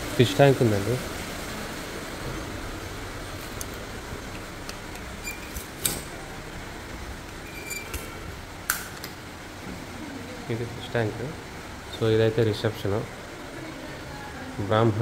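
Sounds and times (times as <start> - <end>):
machinery hum: 0.0 - 15.0.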